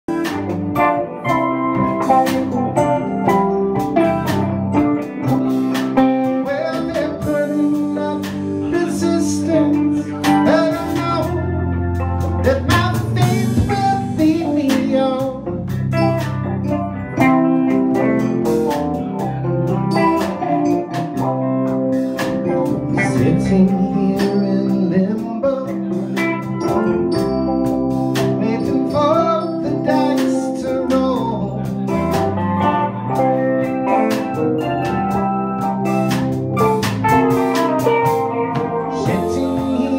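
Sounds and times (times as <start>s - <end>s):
guitar: 0.0s - 39.9s
live band playing: 0.0s - 39.9s.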